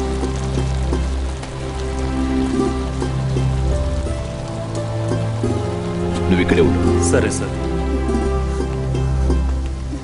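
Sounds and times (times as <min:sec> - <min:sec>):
heavy rain falling: 0:00.0 - 0:10.0
low sustained background music: 0:00.0 - 0:10.0.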